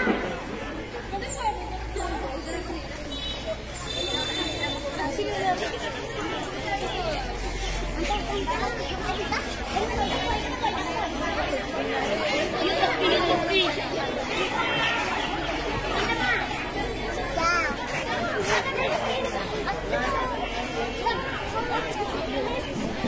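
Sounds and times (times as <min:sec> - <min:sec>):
girls chattering: 0:00.0 - 0:23.0.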